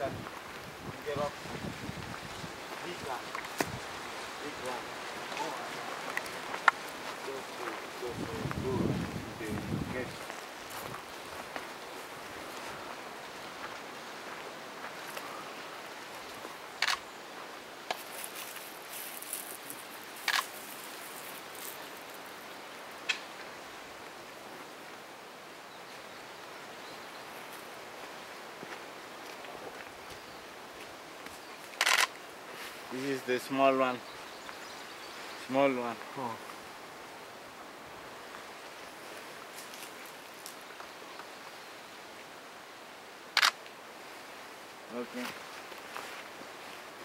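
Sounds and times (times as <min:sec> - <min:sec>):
outdoor background hiss: 0:00.0 - 0:47.0
sharp clicks: 0:31.8 - 0:32.2, 0:43.4 - 0:43.6.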